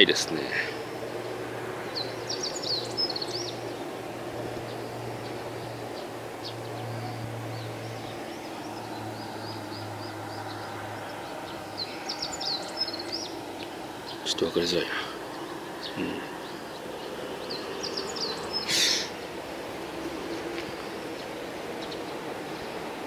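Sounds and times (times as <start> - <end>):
small birds chirping: 0.0 - 23.0
steady low hum: 0.0 - 23.0.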